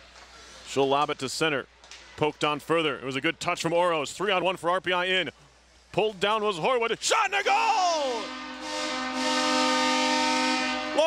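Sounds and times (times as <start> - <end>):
arena goal horn chord: 8.2 - 11.0.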